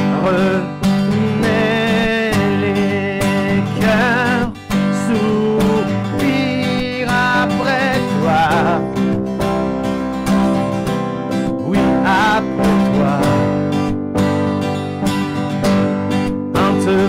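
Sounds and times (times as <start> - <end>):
man singing: 0.0 - 9.1, 11.6 - 13.7, 16.5 - 17.0
acoustic guitar strumming: 0.0 - 17.0.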